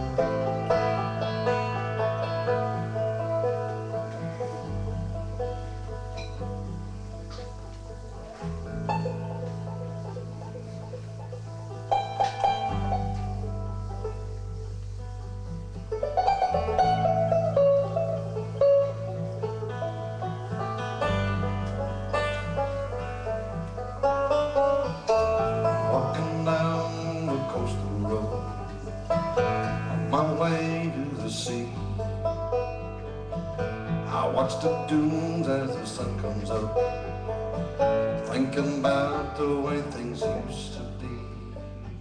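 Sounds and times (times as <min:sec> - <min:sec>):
acoustic guitar strumming: 0:00.0 - 0:42.0
banjo picking: 0:00.0 - 0:42.0
held bass notes: 0:00.0 - 0:42.0.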